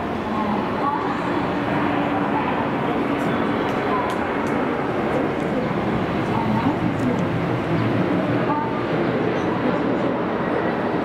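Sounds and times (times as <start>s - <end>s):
electric train rumbling: 0.0s - 11.0s.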